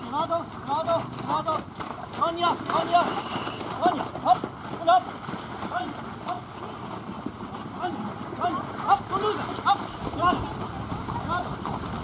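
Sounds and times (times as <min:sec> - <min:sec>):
horse hoofbeats in wet mud: 0:00.0 - 0:12.0.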